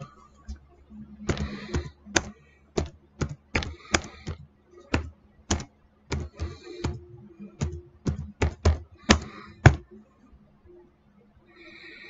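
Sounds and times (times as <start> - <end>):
computer keyboard typing: 1.2 - 9.8.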